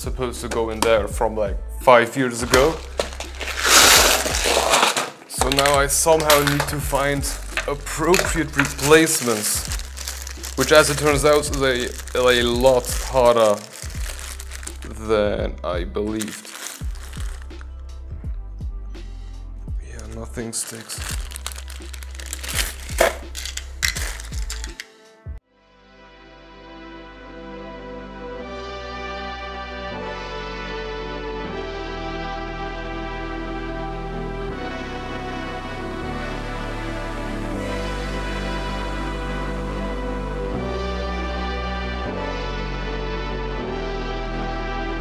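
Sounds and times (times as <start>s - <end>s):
quiet background music: 0.0s - 45.0s
screws rattling in plastic box: 20.7s - 24.9s.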